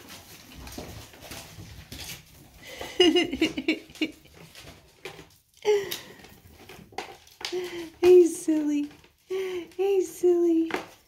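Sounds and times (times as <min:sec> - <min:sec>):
ferrets rustling and scrabbling: 0:00.0 - 0:11.0.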